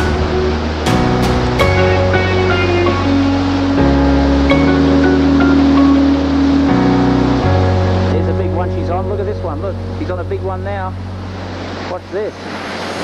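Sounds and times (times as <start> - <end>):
short plucked notes: 0.0 - 12.2
low held bass notes: 0.0 - 13.0
person speaking over music: 8.0 - 11.0, 11.9 - 12.4.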